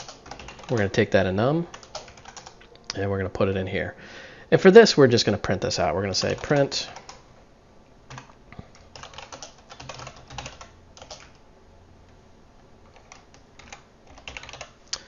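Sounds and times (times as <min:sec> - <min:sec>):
typing on computer keyboard: 0:00.0 - 0:01.0, 0:01.7 - 0:02.6, 0:06.1 - 0:07.2, 0:08.1 - 0:11.4, 0:12.9 - 0:14.8.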